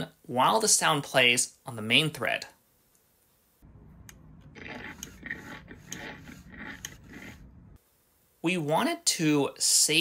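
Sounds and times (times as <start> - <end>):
steady low motor hum: 3.6 - 7.8.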